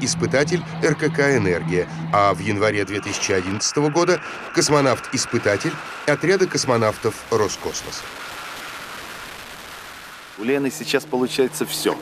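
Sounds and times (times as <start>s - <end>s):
rushing wind of freefall: 0.0s - 12.0s.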